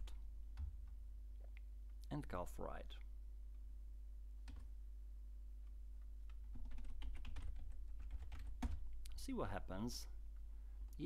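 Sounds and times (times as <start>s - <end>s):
faint steady hum: 0.0s - 11.0s
computer keyboard typing: 4.4s - 4.7s, 6.3s - 8.9s.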